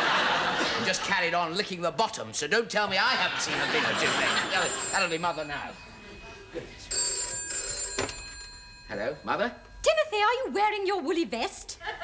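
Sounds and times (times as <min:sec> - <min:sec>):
telephone bell ringing: 0:03.6 - 0:09.9.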